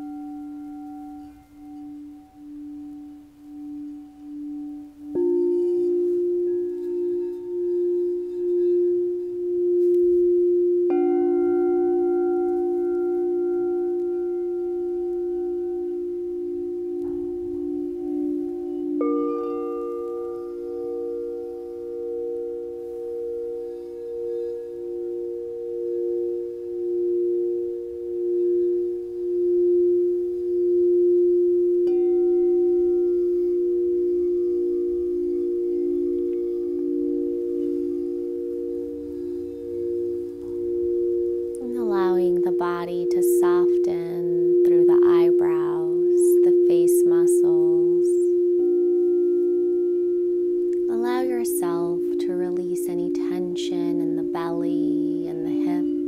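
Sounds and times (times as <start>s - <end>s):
crystal singing bowls ringing: 0.0s - 56.0s.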